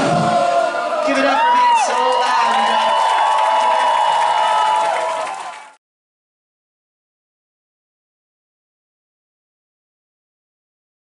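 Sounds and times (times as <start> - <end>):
concert crowd cheering: 0.0 - 5.8
long high-pitched shouts: 0.4 - 5.4.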